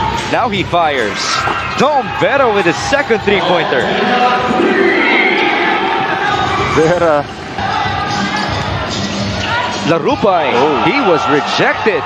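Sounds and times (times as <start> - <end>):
arena noise: 0.0 - 12.0.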